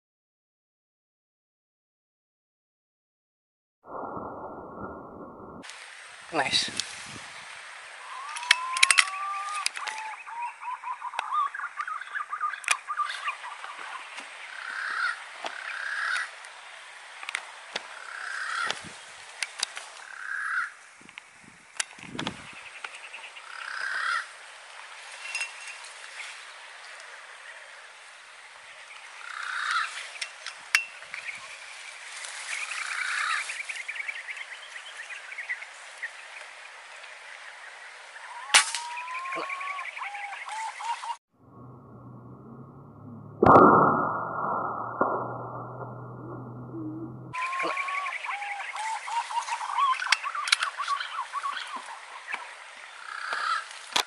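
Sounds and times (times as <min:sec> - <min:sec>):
pigeons whistling calls: 0:08.0 - 0:13.9, 0:38.3 - 0:41.2, 0:46.2 - 0:51.9
short bird calls: 0:08.0 - 0:16.3, 0:38.2 - 0:41.2, 0:46.2 - 0:53.7.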